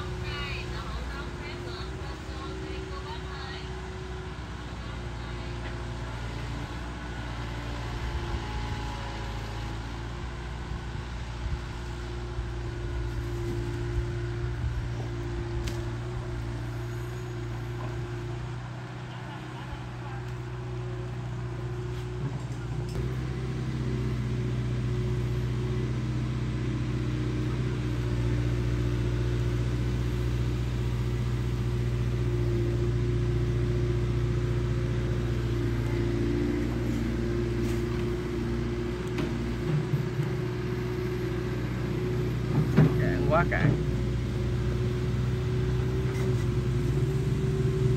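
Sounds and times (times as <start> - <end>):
excavator diesel engine running: 0.0 - 47.9.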